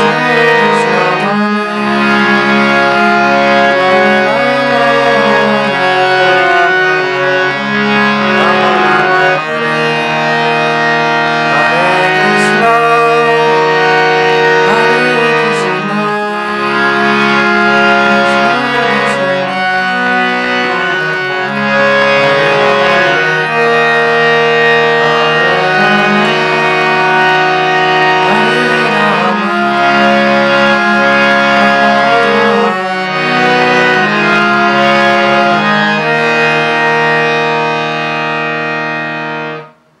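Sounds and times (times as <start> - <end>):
harmonium melody over drone: 0.0 - 40.0.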